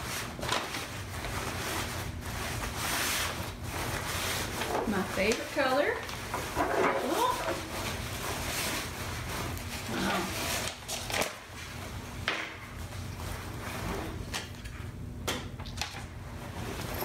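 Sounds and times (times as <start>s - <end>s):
fabric rustling and crumpling: 0.0s - 12.1s.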